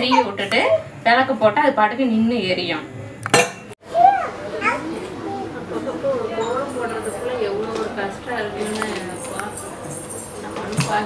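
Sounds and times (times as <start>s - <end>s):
children talking: 3.8s - 11.0s
voices talking: 3.8s - 11.0s.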